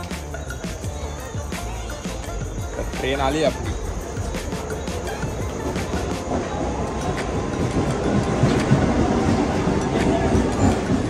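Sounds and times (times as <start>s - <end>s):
faint steady train whine: 0.0s - 11.0s
wheels clattering over rail joints: 0.0s - 11.0s.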